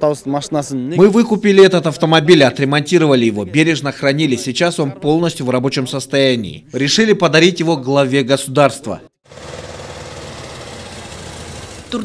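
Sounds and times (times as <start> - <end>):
jeep engine running: 9.3 - 12.0.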